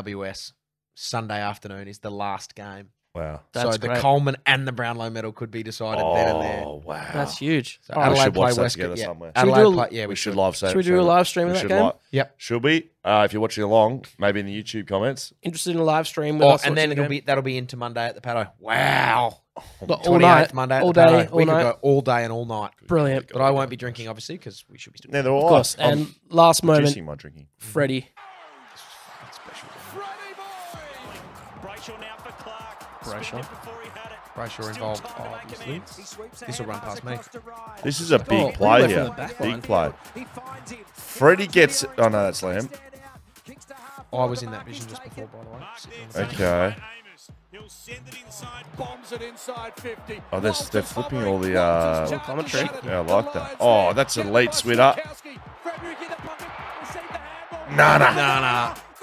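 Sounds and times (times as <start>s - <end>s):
man giving fast sports commentary: 0.0s - 28.2s, 29.2s - 59.0s
background noise: 0.0s - 31.8s
person talking: 3.2s - 4.1s, 5.8s - 10.0s, 10.6s - 12.0s, 16.4s - 17.2s, 19.8s - 21.8s, 25.4s - 27.1s, 36.5s - 40.0s, 41.2s - 42.7s, 46.0s - 46.8s, 50.3s - 55.0s, 57.7s - 58.7s
background music: 5.9s - 12.0s, 19.9s - 21.8s, 28.9s - 59.0s.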